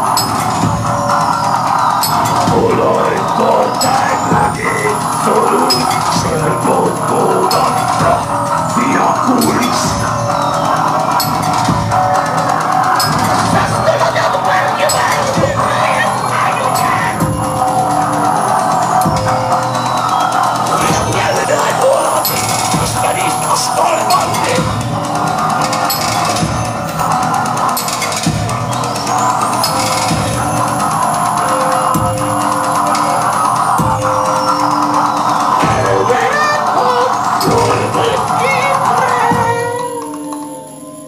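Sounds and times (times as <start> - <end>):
drum beat: 0.0 - 40.3
live band playing loud music: 0.0 - 40.9
high tone gliding upward: 0.0 - 41.0
keyboard synthesizer: 0.0 - 41.0.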